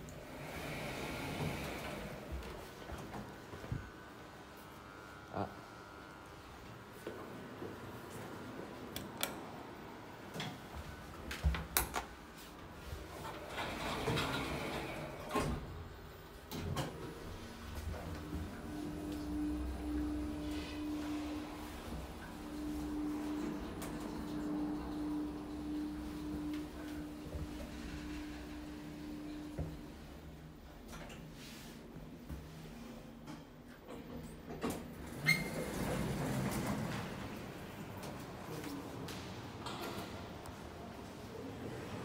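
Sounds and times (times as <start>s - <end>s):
sliding doors moving: 0.0s - 3.4s, 12.7s - 30.4s, 34.7s - 40.6s
elevator hum and rumble: 0.0s - 42.0s.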